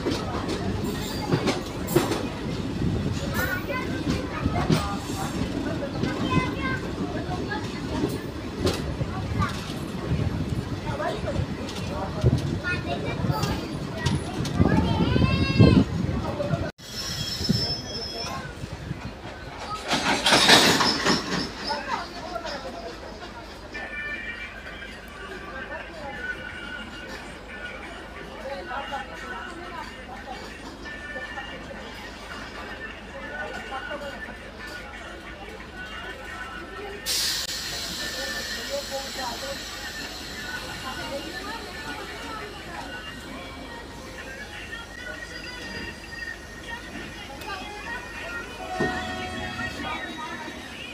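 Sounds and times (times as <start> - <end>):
people talking: 0.0 - 16.7, 17.4 - 50.9
train rumble and wheel clatter: 0.0 - 50.9
high wheel squeal: 16.8 - 18.5.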